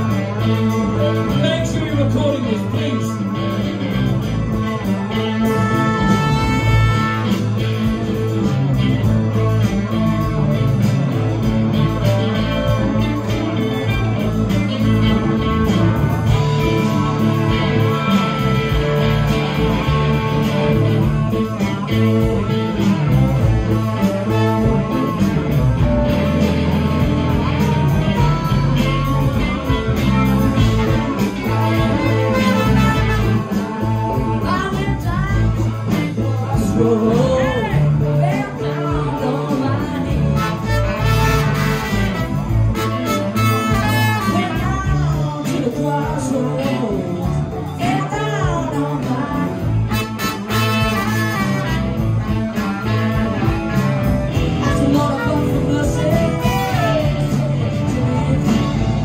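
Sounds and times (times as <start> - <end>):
bass: 0.0 - 59.0
drums: 0.0 - 59.0
electric guitars: 0.0 - 59.0
horn section: 2.9 - 35.9, 39.2 - 45.1, 49.6 - 59.0.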